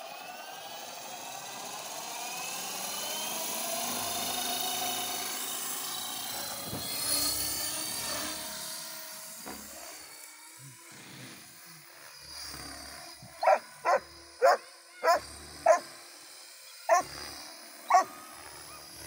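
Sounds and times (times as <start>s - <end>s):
model helicopter motor whine: 0.0s - 19.0s
rotor whooshing: 3.6s - 19.0s.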